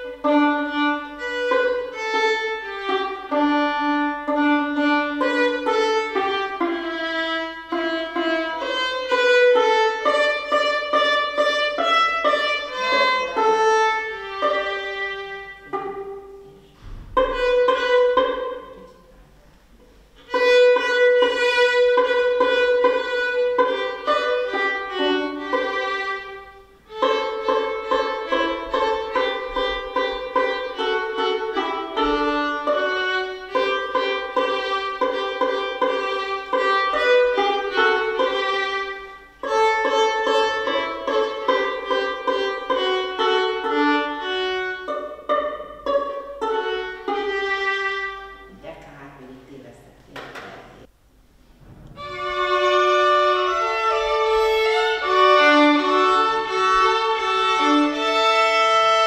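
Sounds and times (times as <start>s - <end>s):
violin duet: 0.0s - 48.8s, 51.7s - 59.0s.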